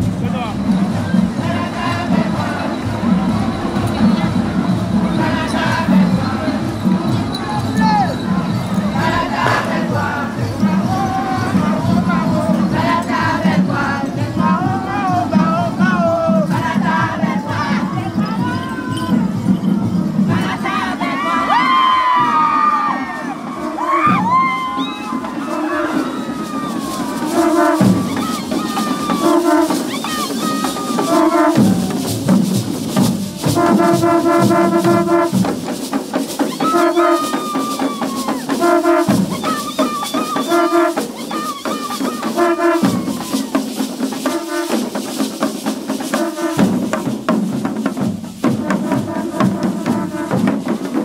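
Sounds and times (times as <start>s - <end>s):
hand drums beating rhythm: 0.0s - 51.0s.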